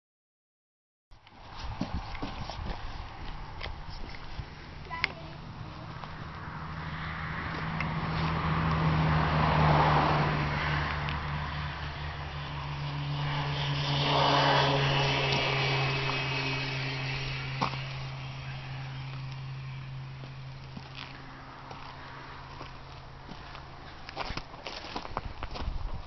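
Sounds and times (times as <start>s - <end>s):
vehicle engine humming: 1.2s - 26.0s.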